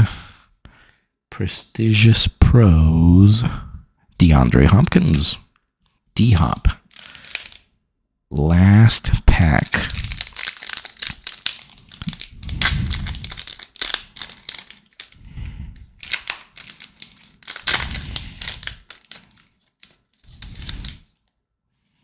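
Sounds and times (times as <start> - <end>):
card pack wrapper crinkling and tearing: 6.3 - 7.7, 9.3 - 21.3.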